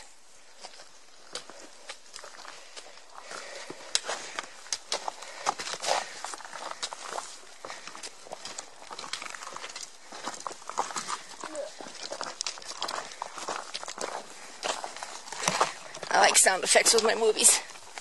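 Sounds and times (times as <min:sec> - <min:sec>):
footsteps crunching on rocky trail: 0:00.0 - 0:18.0
trekking poles tapping stones: 0:00.6 - 0:18.0.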